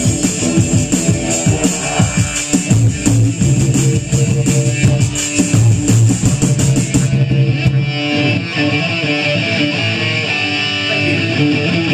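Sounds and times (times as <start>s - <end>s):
live rock band: 0.0s - 11.9s.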